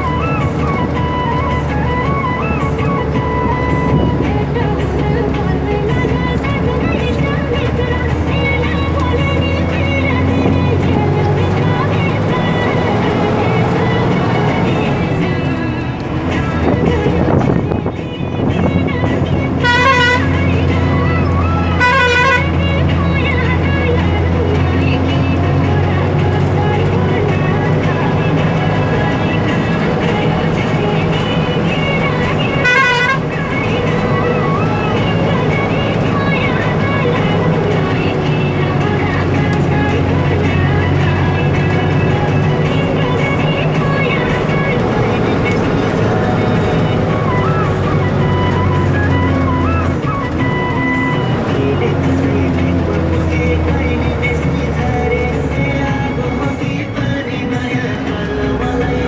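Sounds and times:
music with singing: 0.0s - 59.0s
vehicle engine droning: 0.0s - 59.0s
short horn toots: 19.6s - 20.4s, 21.8s - 22.6s, 32.6s - 33.2s.

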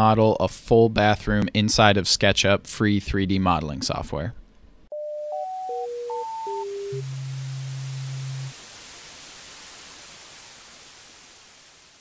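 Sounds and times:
low steady electronic tone: 4.9s - 8.6s
static hiss: 6.1s - 12.0s.

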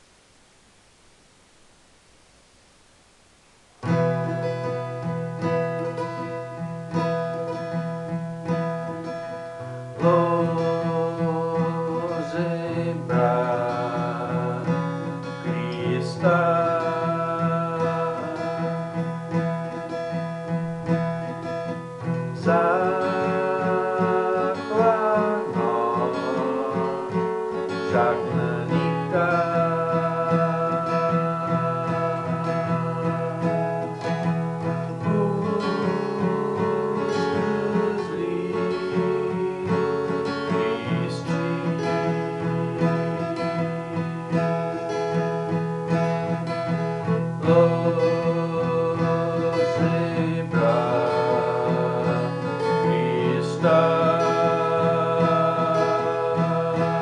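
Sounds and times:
acoustic guitar strummed: 0.0s - 57.0s
man singing: 3.9s - 57.0s.

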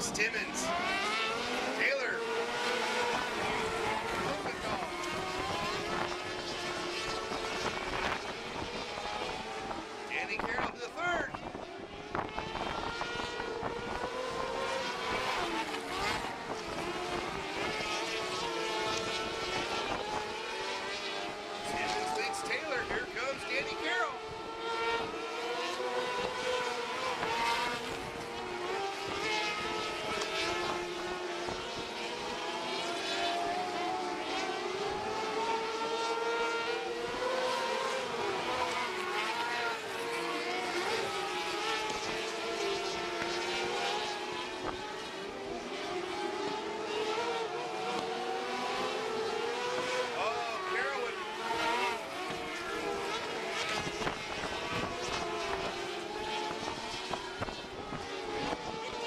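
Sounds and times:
race car engines: 0.0s - 59.0s.

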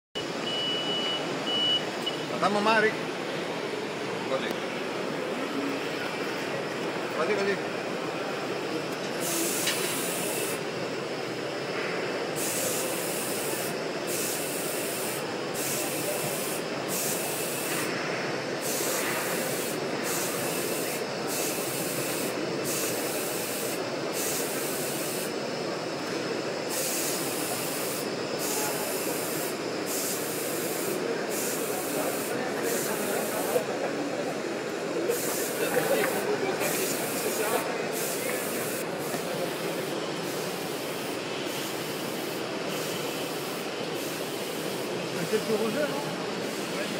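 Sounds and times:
machine hiss: 0.2s - 46.9s.

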